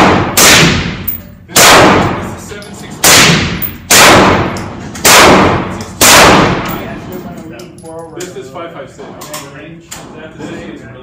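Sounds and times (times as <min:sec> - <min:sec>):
rifle shots echoing indoors: 0:00.0 - 0:07.2.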